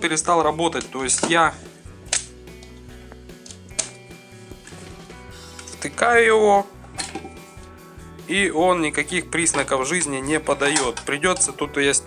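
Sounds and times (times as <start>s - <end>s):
quiet background music: 0.0s - 12.0s
plastic plug clicking in socket: 3.4s - 4.0s.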